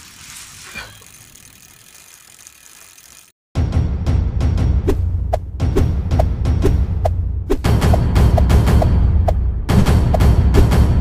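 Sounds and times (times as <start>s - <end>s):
rapid ratcheting ticks: 1.0s - 3.4s.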